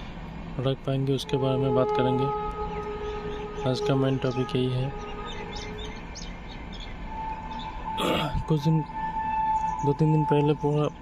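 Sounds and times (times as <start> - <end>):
small birds chirping: 1.1 - 11.0.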